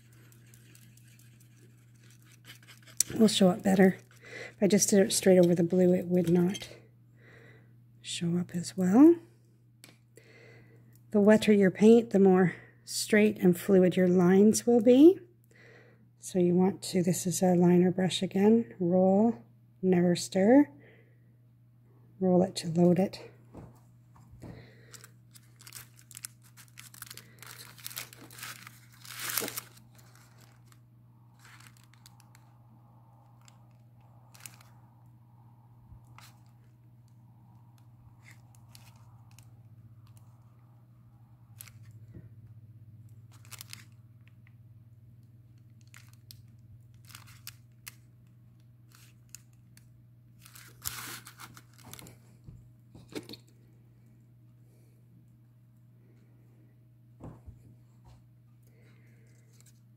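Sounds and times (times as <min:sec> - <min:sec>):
paper page handled: 0:00.0 - 0:04.2, 0:24.9 - 0:30.8, 0:31.4 - 0:32.5, 0:33.4 - 0:34.7, 0:36.0 - 0:36.6, 0:38.2 - 0:40.3, 0:43.3 - 0:44.0, 0:45.8 - 0:48.0, 0:50.4 - 0:52.2
steady low hum: 0:00.0 - 0:59.9.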